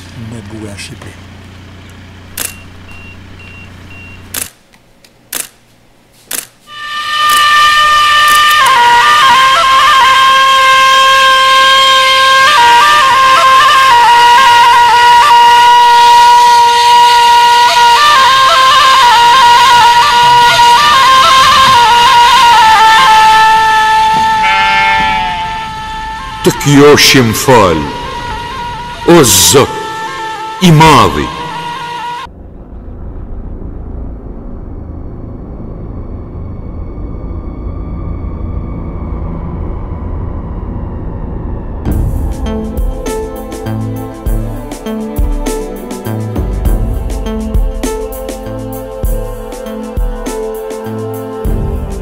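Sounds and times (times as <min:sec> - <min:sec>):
faint short beeps: 0:02.4 - 0:04.3
camera shutter clicking: 0:04.3 - 0:04.6, 0:05.3 - 0:05.6, 0:06.3 - 0:06.6
drone-like music: 0:06.7 - 0:52.0
sheep bleating: 0:24.1 - 0:25.9
steady low hum: 0:27.2 - 0:52.0.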